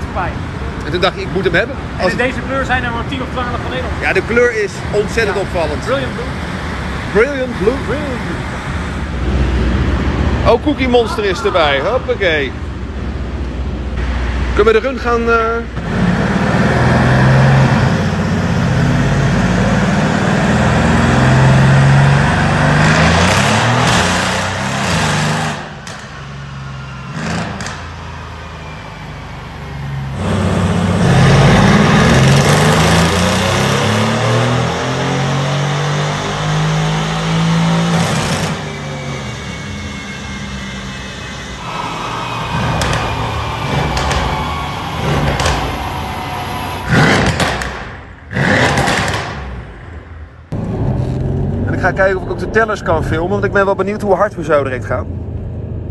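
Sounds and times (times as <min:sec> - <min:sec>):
car engine revving on dyno: 0:00.4 - 0:10.9, 0:13.9 - 0:28.7, 0:29.5 - 0:49.7.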